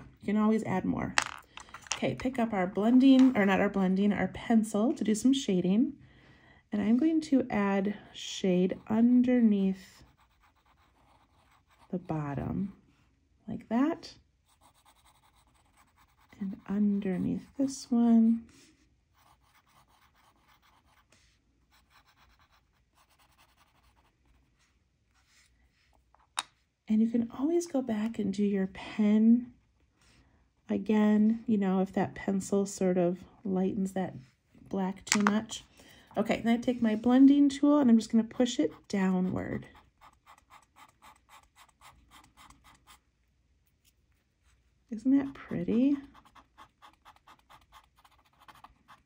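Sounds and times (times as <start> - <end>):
pencil scratching on paper: 8.7 - 12.7, 14.4 - 17.6, 18.5 - 24.4, 38.3 - 43.0, 45.2 - 49.0
pencil click on board: 35.1 - 35.4.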